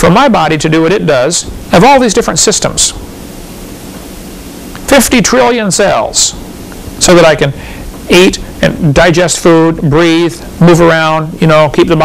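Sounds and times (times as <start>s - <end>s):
man talking: 0.0s - 3.0s, 4.8s - 6.4s, 7.0s - 12.0s
background hiss: 0.0s - 12.0s.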